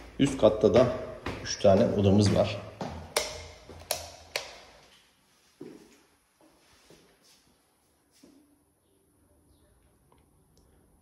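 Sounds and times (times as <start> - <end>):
footsteps on hard floor: 0.6 - 3.9.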